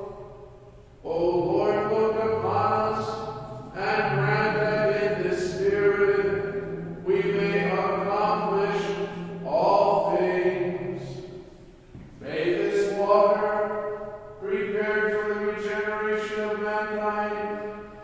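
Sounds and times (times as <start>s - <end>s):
man chanting a prayer: 1.0s - 11.4s, 12.2s - 18.0s.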